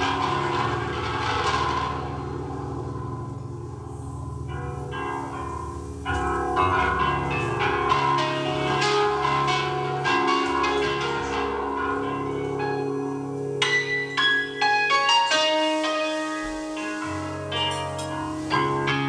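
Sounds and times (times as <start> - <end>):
bell-like ringing notes: 0.0 - 19.0
low keyboard and bass notes: 0.0 - 19.0.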